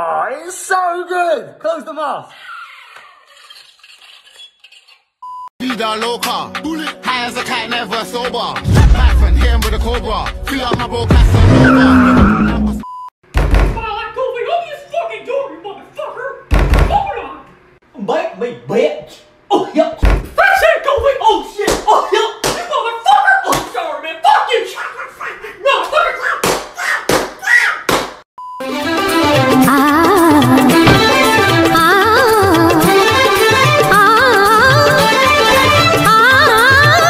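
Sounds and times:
sharp knocks: 0:30.8 - 0:31.3.

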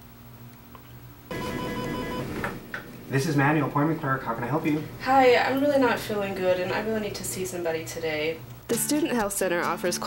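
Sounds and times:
electronic telephone ring: 0:01.3 - 0:02.4.

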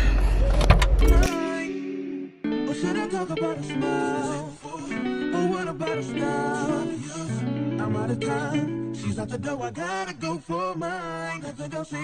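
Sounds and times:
background guitar music: 0:01.0 - 0:10.2.

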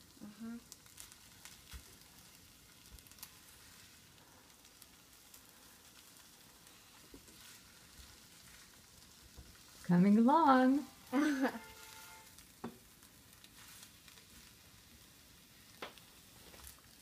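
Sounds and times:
eggs sizzling in a frying pan: 0:00.0 - 0:17.0.

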